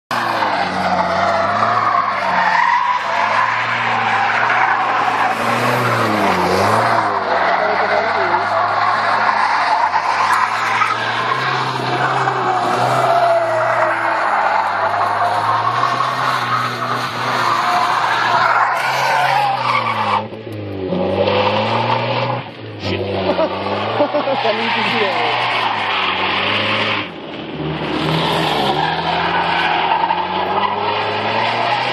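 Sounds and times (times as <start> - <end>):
tyre squeal: 0.2 - 20.3
car engine revving hard: 0.2 - 31.9.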